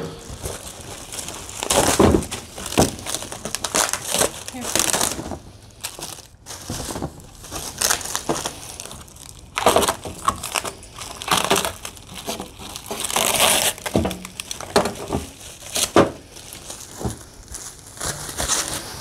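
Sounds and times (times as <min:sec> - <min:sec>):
plastic and cardboard rustling: 0:00.0 - 0:19.0.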